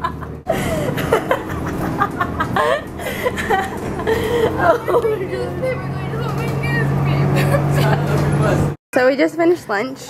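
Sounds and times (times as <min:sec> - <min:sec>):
young woman laughing hard: 0:00.0 - 0:05.2
low hum of bus: 0:00.0 - 0:08.8.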